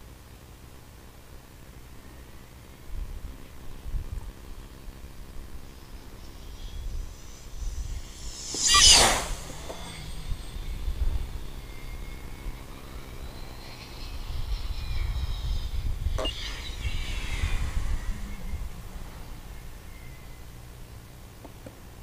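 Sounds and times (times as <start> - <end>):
wind rumble on microphone: 2.9 - 20.9
glider airflow whoosh and whistle: 5.4 - 20.8.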